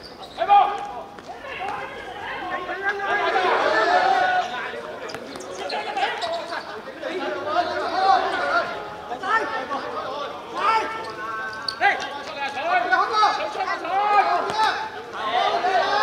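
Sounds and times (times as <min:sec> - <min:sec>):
men shouting: 0:01.4 - 0:04.5, 0:07.2 - 0:09.9, 0:12.8 - 0:16.0.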